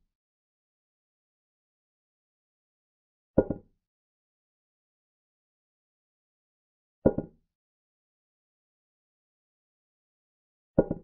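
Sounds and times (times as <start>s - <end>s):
wooden clack sound effect: 3.4s - 3.7s, 7.1s - 7.3s, 10.8s - 11.0s.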